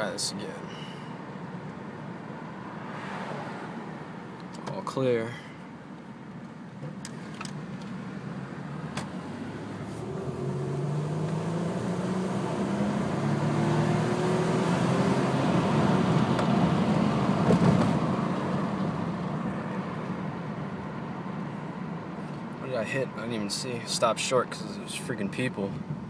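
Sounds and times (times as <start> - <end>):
car engine revving: 8.0 - 19.0.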